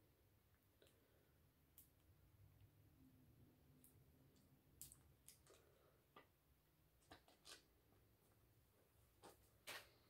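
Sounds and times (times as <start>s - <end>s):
faint clicks and crinkles of paper: 9.2s - 10.0s.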